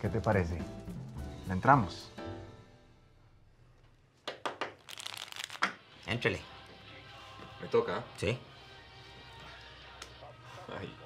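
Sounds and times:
playing cards being shuffled: 0:04.5 - 0:05.8.

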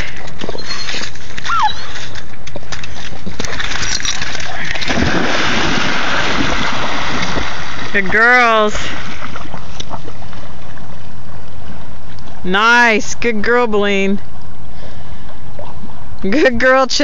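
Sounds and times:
dogs splashing and swimming: 0:00.0 - 0:11.8.

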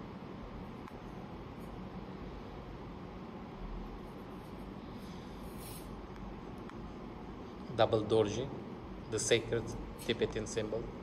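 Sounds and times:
room noise hiss and rumble: 0:00.0 - 0:11.0.

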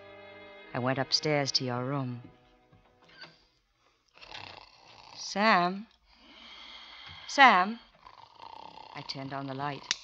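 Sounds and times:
man breathing heavily in sleep: 0:03.6 - 0:05.2, 0:06.0 - 0:09.0.

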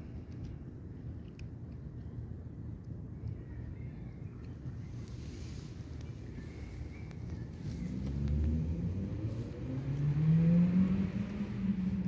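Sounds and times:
low engine hum rising in pitch: 0:04.8 - 0:12.0.

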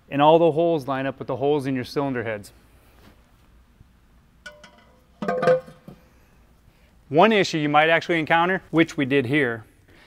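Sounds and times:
metallic knocks with ring: 0:04.5 - 0:06.0.

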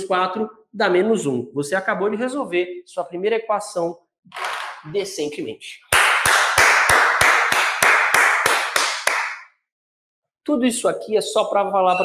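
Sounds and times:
hands clapping: 0:05.9 - 0:09.5.

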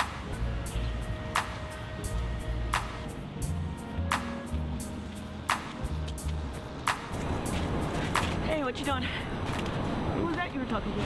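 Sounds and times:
passing traffic: 0:00.0 - 0:11.0.

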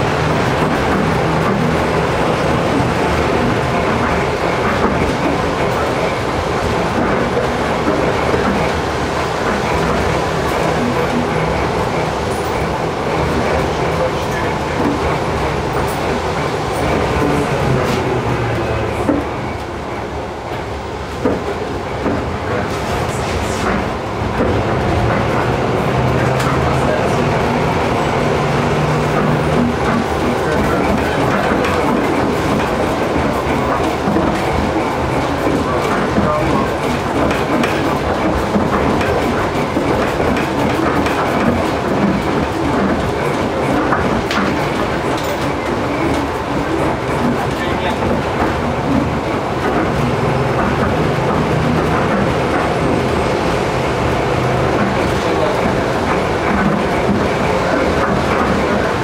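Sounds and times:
tram wheels rumbling on rails: 0:00.0 - 0:59.0.

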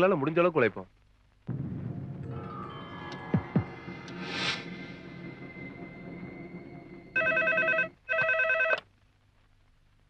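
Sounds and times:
soft background music: 0:01.5 - 0:08.0
desk telephone ringing: 0:07.2 - 0:08.8.

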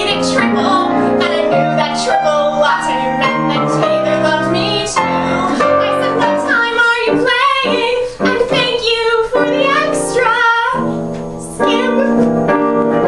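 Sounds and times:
woman singing into microphone: 0:00.0 - 0:12.4
piano chords: 0:00.0 - 0:13.0.

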